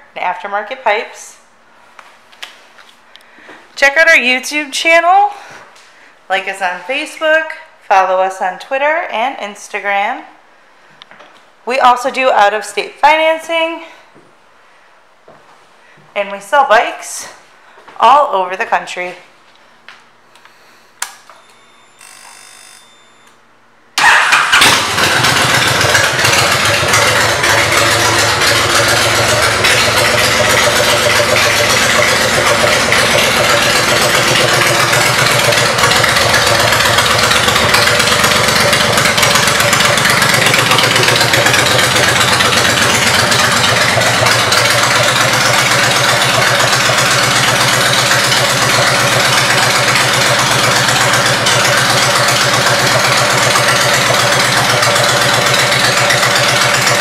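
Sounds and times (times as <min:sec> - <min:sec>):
motorcycle engine idling: 0:24.0 - 0:57.0
motorcycle engine starting: 0:24.0 - 0:57.0.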